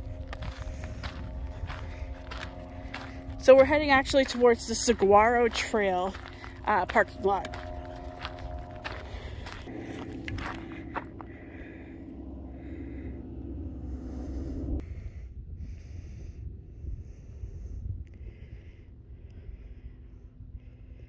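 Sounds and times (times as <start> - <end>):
footsteps on gravel: 0.0 - 11.4
low steady hum: 0.0 - 21.0
wind rumble on microphone: 0.0 - 21.0
person breathing: 8.6 - 21.0.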